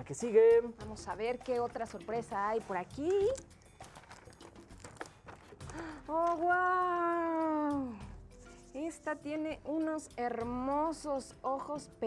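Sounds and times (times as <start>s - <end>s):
paper rustling and crinkling: 3.4s - 6.5s.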